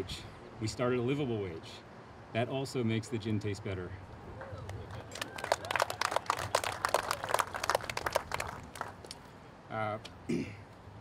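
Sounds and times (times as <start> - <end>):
crowd clapping: 4.6 - 9.2.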